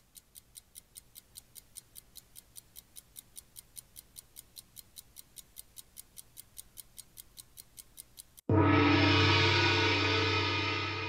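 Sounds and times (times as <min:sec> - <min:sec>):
timer ticking: 0:00.0 - 0:08.6.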